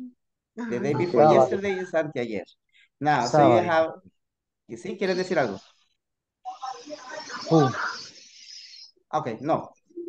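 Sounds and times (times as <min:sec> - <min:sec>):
microphone hiss: 0:04.7 - 0:09.7.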